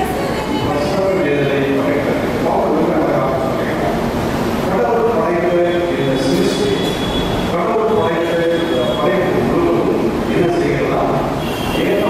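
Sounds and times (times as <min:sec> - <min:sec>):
man preaching into a microphone: 0:00.6 - 0:04.0, 0:04.6 - 0:12.0.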